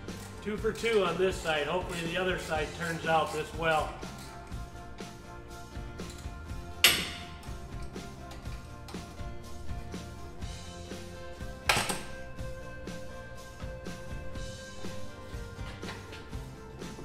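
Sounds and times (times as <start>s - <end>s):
background music: 0.0s - 17.0s
metallic clank of hand tools: 6.8s - 7.4s.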